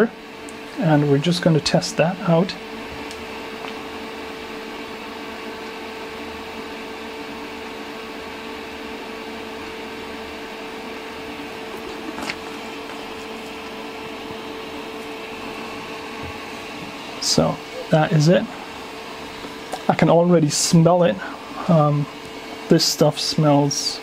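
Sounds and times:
constant hum tone: 0.0s - 24.0s
electric fan running: 0.0s - 24.0s.

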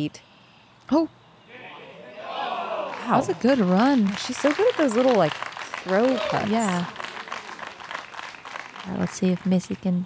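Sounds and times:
spectators applauding: 2.0s - 9.9s.

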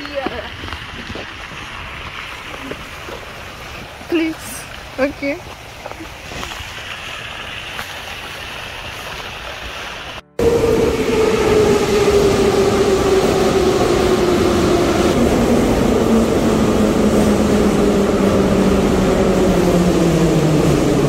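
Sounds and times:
metro train motor whine: 10.4s - 21.0s.

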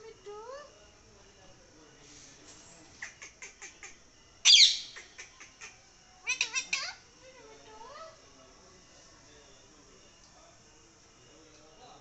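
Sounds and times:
parakeet calling: 3.0s - 7.1s.

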